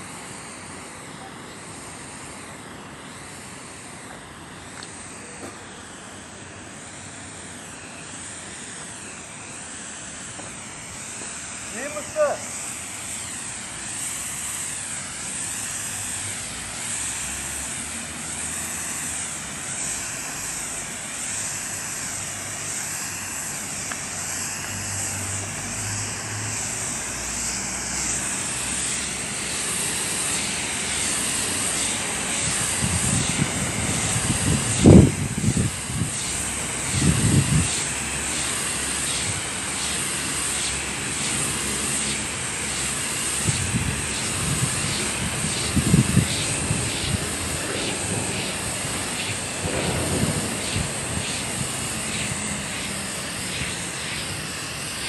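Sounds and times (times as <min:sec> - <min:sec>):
spray foam gun hissing: 0:00.0 - 0:55.0.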